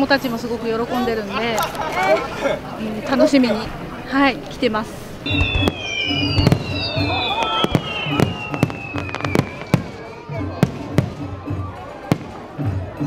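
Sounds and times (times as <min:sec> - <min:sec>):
high falling firework whistle: 0:05.2 - 0:10.4
fireworks bangs and crackles: 0:05.2 - 0:13.0.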